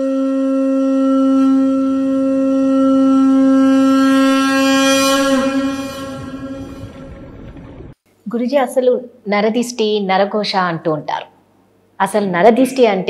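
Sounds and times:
conch shell blown: 0:00.0 - 0:07.9.

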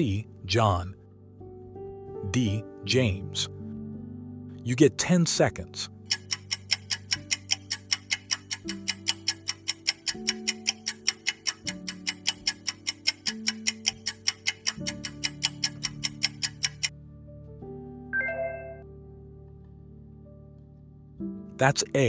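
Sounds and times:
soft background music: 0:00.0 - 0:22.0
clock ticking: 0:05.9 - 0:16.9
short bright chime: 0:18.2 - 0:18.8.

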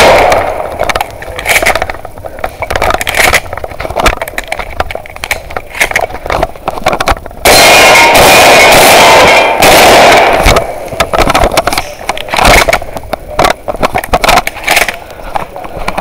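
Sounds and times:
distorted rushing noise: 0:00.0 - 0:16.0.

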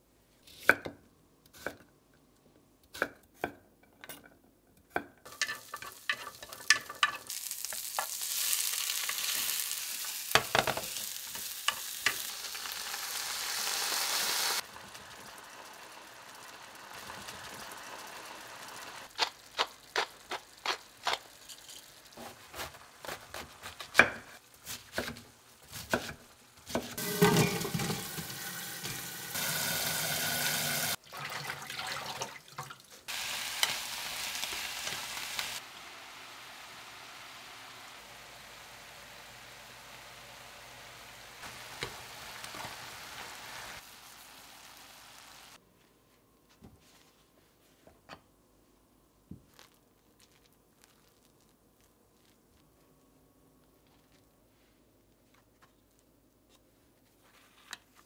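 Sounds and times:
vegetables sizzling in frying pan: 0:05.3 - 0:24.4, 0:25.6 - 0:31.0, 0:33.1 - 0:45.6.

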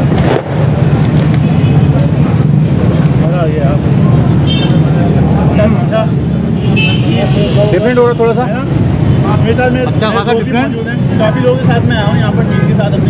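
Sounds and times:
people talking in background: 0:00.0 - 0:13.0
traffic rumble: 0:00.0 - 0:13.0.

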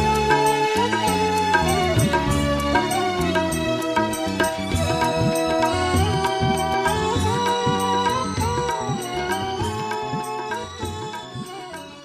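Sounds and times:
light regular percussion: 0:00.0 - 0:12.0
sustained instrumental melody: 0:00.0 - 0:12.0.

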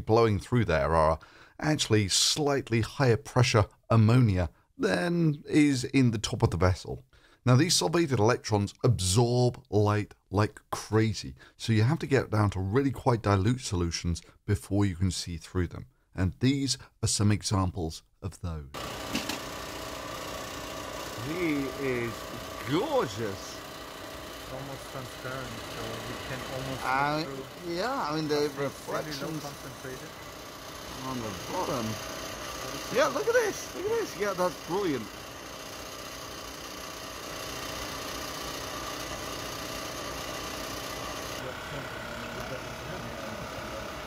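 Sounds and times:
machinery humming: 0:18.8 - 0:44.0.

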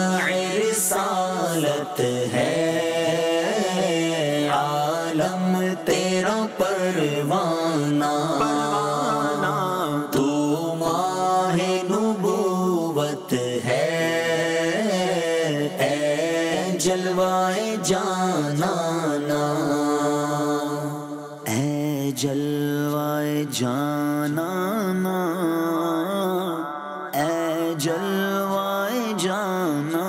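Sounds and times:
devotional chanting: 0:00.0 - 0:30.0
low held drone: 0:08.3 - 0:10.4.

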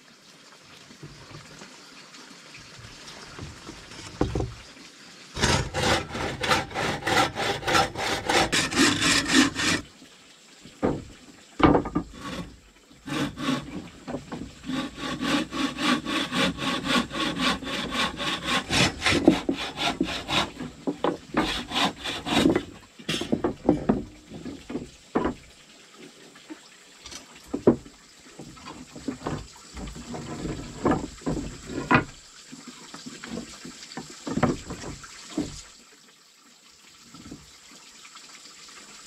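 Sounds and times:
saw cutting wood by hand: 0:05.4 - 0:09.8, 0:11.6 - 0:24.0.

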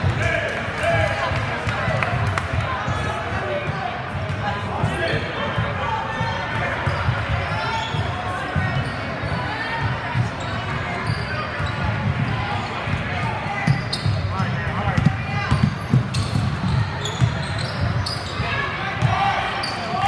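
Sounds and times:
sneakers squeaking on floor: 0:06.5 - 0:20.0.

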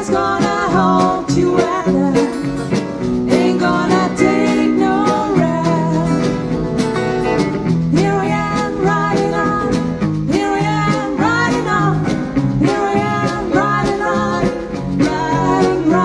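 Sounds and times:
person singing: 0:00.0 - 0:02.5, 0:03.2 - 0:06.7, 0:07.9 - 0:16.0
electric guitars: 0:00.0 - 0:16.0
steady drum beat: 0:00.0 - 0:16.0.

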